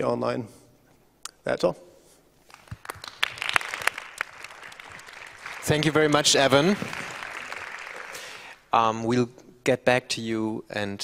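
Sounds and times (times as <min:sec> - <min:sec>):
audience applause: 0:02.5 - 0:08.6.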